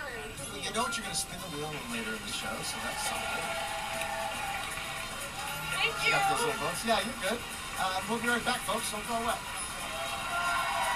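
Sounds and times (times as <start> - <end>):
background music: 0.0 - 10.9
audience applauding: 2.4 - 10.9.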